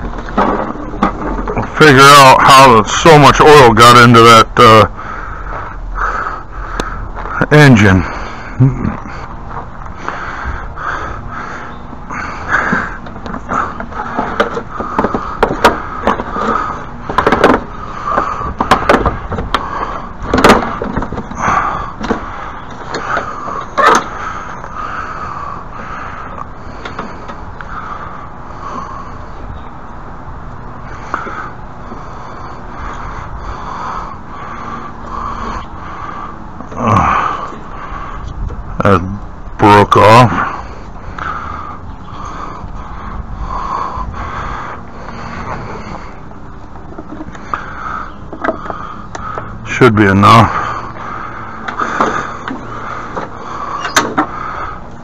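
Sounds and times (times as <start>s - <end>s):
lawn mower clunking and scraping: 0.0s - 3.0s, 11.9s - 25.0s, 45.0s - 49.7s, 50.6s - 55.0s
steady background hum: 0.0s - 55.0s.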